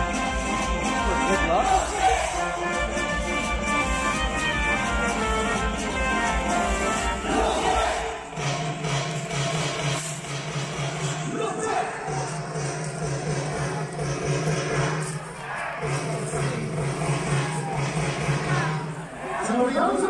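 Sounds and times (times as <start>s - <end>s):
music over loudspeakers: 0.0s - 20.0s
crowd cheering: 0.6s - 5.0s, 6.1s - 8.6s, 11.3s - 20.0s.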